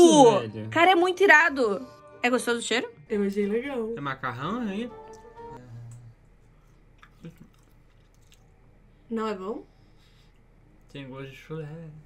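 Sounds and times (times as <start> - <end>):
person chewing: 5.9 - 8.6.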